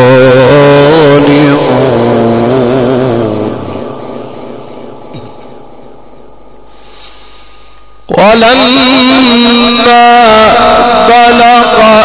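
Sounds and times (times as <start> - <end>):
man chanting: 0.0 - 4.3, 8.1 - 12.0.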